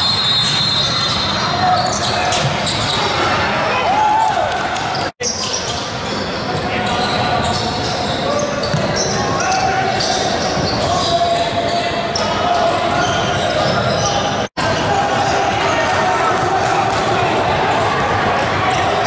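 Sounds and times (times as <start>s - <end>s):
echoing hubbub of voices: 0.0s - 19.0s.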